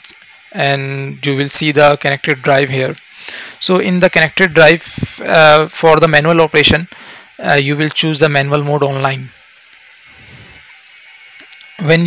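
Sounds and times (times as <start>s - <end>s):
background hiss: 0.0s - 12.0s
man speaking: 0.6s - 3.0s, 3.6s - 9.3s, 11.8s - 12.0s.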